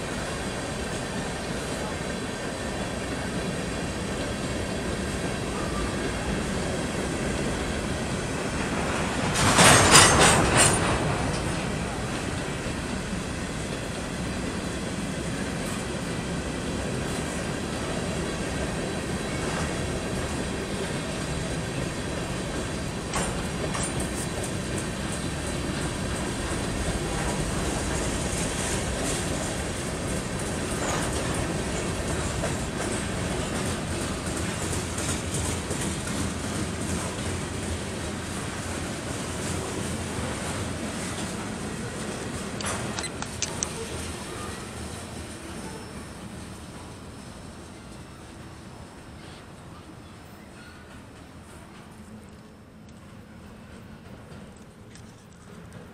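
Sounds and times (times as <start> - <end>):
freight train wheels rumbling: 0.0 - 55.9.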